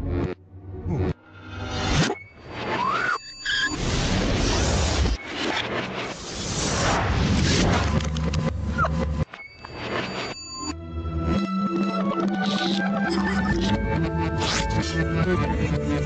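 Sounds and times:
music: 0.0s - 3.0s, 4.7s - 16.0s.

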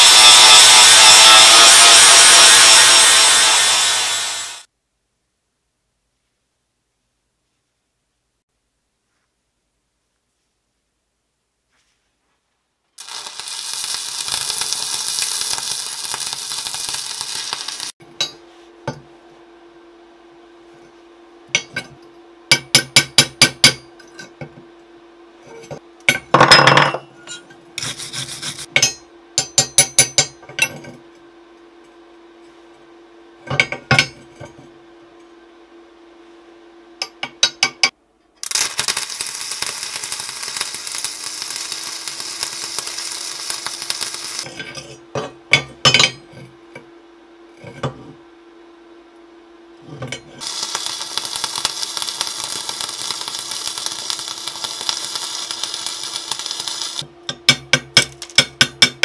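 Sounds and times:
arc welding crackling hiss: 0.0s - 4.7s, 13.0s - 18.0s, 27.8s - 28.7s, 38.4s - 44.7s, 50.4s - 57.1s
hammer striking steel: 28.8s - 30.7s, 57.3s - 59.0s.

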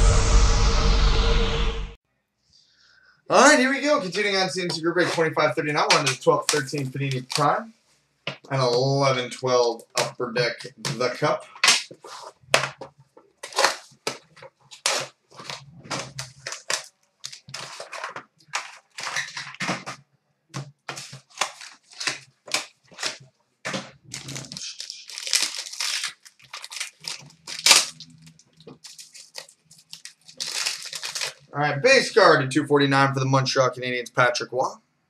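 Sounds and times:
plastic wrap crinkling and tearing: 3.6s - 7.6s, 9.7s - 20.0s, 20.6s - 31.5s.

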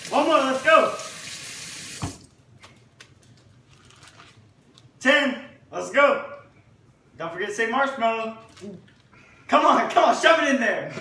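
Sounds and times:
running tap water: 0.0s - 2.3s.

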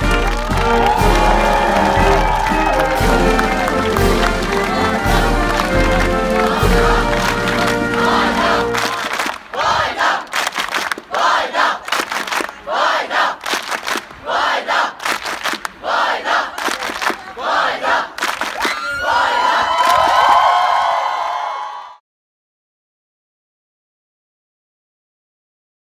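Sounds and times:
music: 0.0s - 9.1s
crowd shouting together: 0.0s - 10.4s, 11.1s - 11.8s, 12.6s - 13.4s, 14.2s - 15.0s, 17.2s - 18.2s
crowd cheering: 0.0s - 22.0s.

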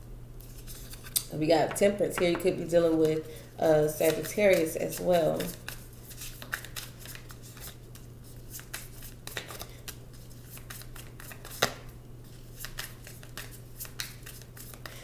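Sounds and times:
cards flicking and snapping: 12.6s - 14.9s.

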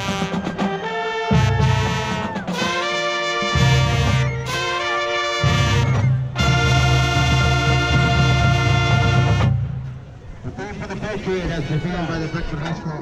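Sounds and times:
marching band brass chords: 0.0s - 10.2s.

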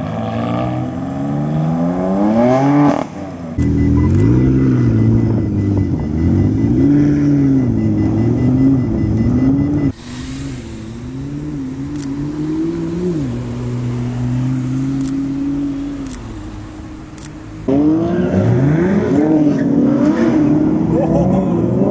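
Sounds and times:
car engine revving: 0.0s - 21.9s
quieter engine note wavering: 3.6s - 19.0s.

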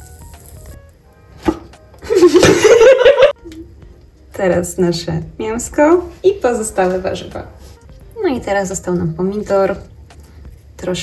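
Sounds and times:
patty sizzling in frying pan: 0.0s - 1.9s
soft background music: 0.0s - 11.0s.

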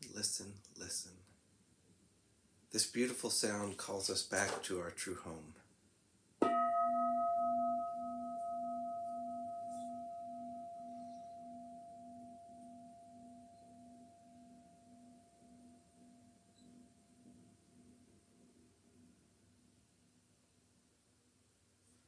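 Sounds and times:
singing bowl bell ringing: 6.4s - 18.0s.

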